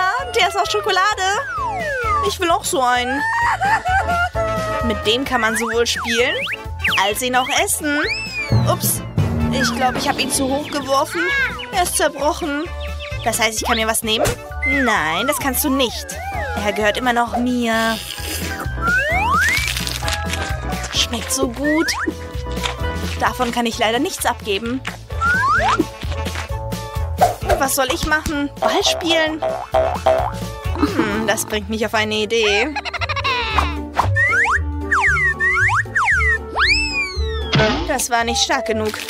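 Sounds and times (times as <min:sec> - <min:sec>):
upbeat children's music: 0:00.0 - 0:39.0
rising whistle sound effect: 0:01.4 - 0:02.3, 0:05.5 - 0:08.8, 0:18.8 - 0:19.7, 0:34.2 - 0:37.6
background music with beat: 0:08.1 - 0:12.2, 0:24.8 - 0:28.8, 0:29.4 - 0:31.2
cartoon boing sound effects: 0:28.6 - 0:31.3, 0:34.1 - 0:37.9.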